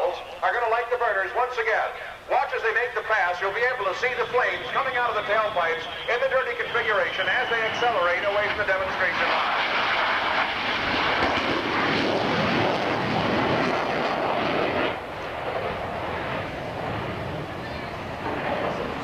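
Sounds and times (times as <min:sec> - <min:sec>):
jet fighters roaring past: 0:00.0 - 0:19.0.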